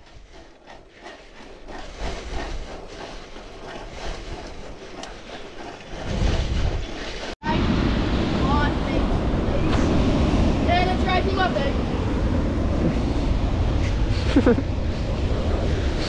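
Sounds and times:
bicycle tyre and bike noise: 0:00.0 - 0:07.4
wind on microphone: 0:00.0 - 0:16.0.

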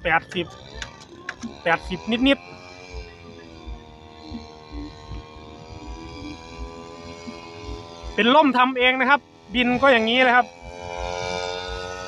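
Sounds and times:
distant two-stroke engine buzzing: 0:00.0 - 0:12.0.

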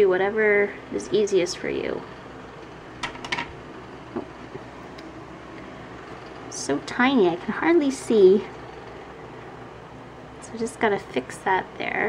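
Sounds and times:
fan-like room noise: 0:00.0 - 0:12.0.

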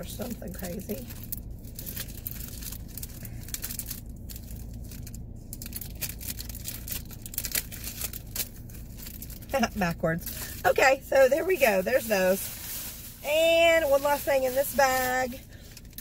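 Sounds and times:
low steady hum: 0:00.0 - 0:16.0
plastic packaging crinkling: 0:00.0 - 0:16.0.

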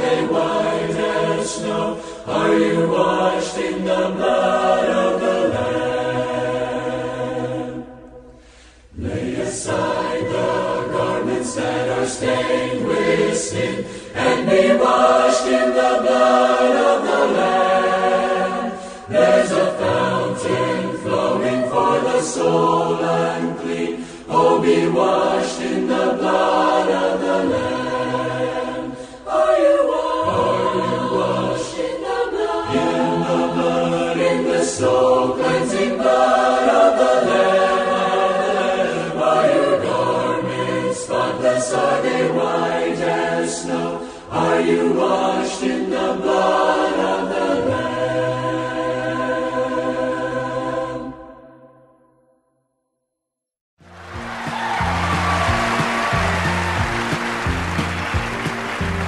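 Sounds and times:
choir singing a hymn: 0:00.0 - 0:51.8.

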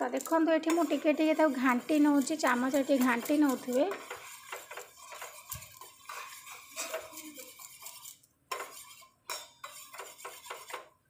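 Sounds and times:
spoon scraping metal pot: 0:00.0 - 0:11.0.

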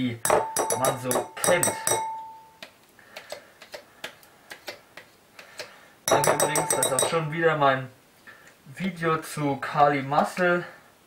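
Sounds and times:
spoon clicking against plastic tub: 0:00.3 - 0:02.1, 0:06.1 - 0:07.2.

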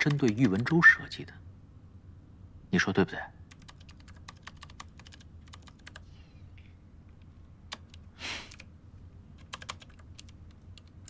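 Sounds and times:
computer keyboard typing: 0:00.0 - 0:00.8, 0:03.5 - 0:06.1, 0:07.7 - 0:08.7, 0:09.4 - 0:11.0.

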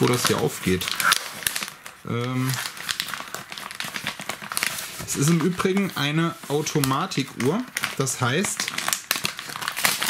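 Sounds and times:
paper envelope crinkling: 0:00.0 - 0:10.0.

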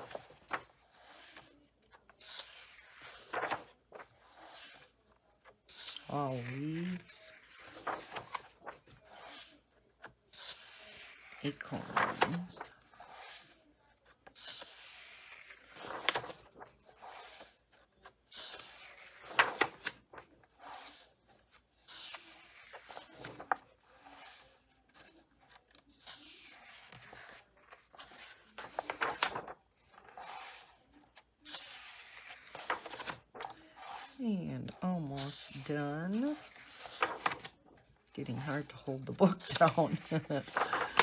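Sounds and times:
paper page rustling: 0:00.0 - 0:41.0
page turning swish: 0:02.3 - 0:04.8, 0:40.5 - 0:41.0.

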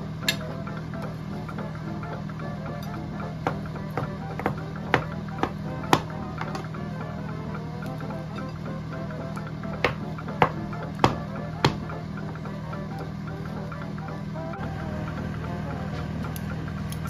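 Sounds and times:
background music: 0:00.0 - 0:17.0
knife tapping cutting board: 0:03.4 - 0:06.6, 0:09.8 - 0:11.9.

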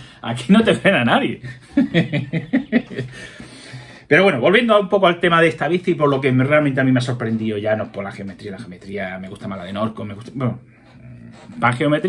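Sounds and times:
man chuckling: 0:01.4 - 0:03.4.

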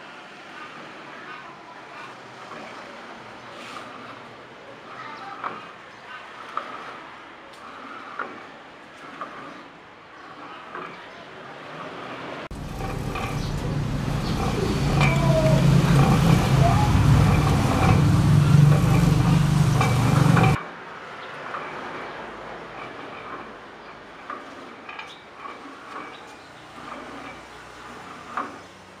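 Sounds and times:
loud low rumble with hum: 0:12.5 - 0:20.6
pulley machine clicks and knocks: 0:12.5 - 0:20.7.

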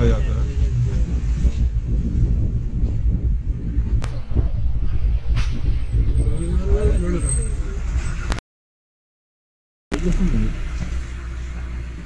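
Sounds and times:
wind buffeting microphone: 0:00.0 - 0:08.3
vehicle driving rumble: 0:00.0 - 0:08.4, 0:09.9 - 0:12.0.

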